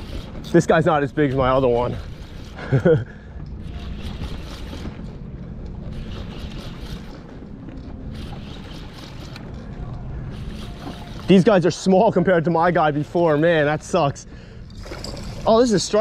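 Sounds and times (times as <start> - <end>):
fishing reel cranking: 0.0 - 2.6, 3.6 - 5.0, 5.9 - 7.2, 8.1 - 9.7, 10.3 - 11.8, 14.6 - 16.0.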